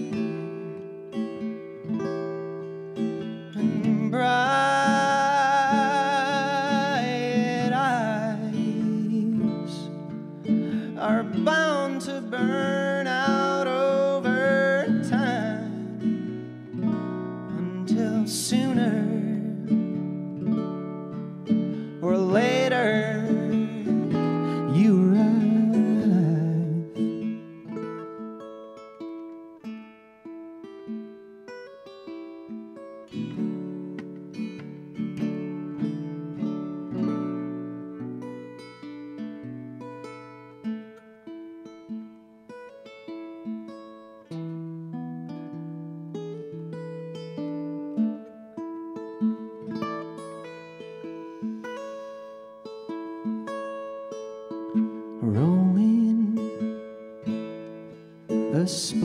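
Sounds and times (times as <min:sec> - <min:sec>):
acoustic guitar picking: 0:00.0 - 0:59.0.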